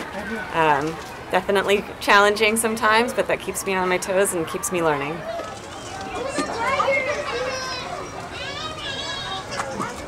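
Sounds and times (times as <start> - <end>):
children chattering: 2.8 - 10.0
children calling out: 5.2 - 10.0.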